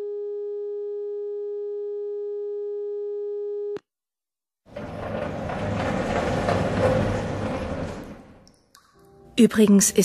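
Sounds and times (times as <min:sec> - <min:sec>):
steady telephone line tone: 0:00.0 - 0:03.8.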